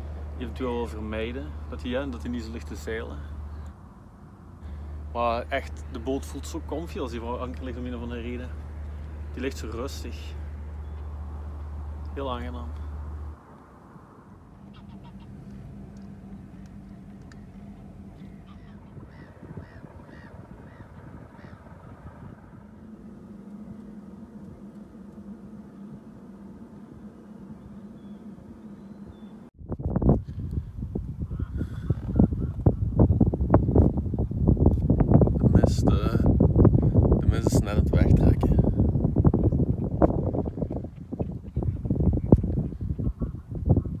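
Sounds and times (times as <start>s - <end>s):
birds calling: 0.0s - 13.4s, 14.2s - 29.5s, 31.2s - 33.3s
faint steady hum: 0.0s - 44.0s
wind buffeting microphone: 0.0s - 44.0s.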